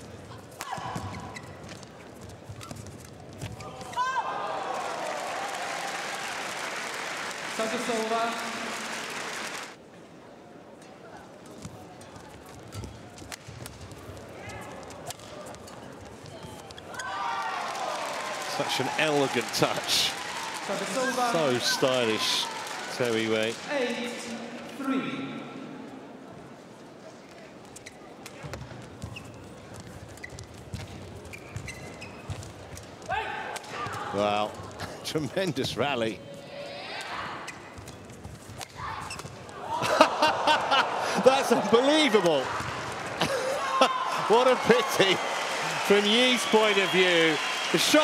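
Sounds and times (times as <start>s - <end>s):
shoes squeaking on court: 0.0s - 4.1s, 11.5s - 17.2s, 27.5s - 33.1s, 37.2s - 39.6s
crowd voices: 7.2s - 29.7s, 38.8s - 48.0s.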